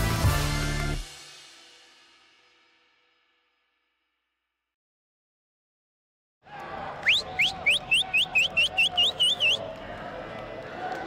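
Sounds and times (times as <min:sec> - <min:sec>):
bird singing rising whistles: 0:07.1 - 0:09.6.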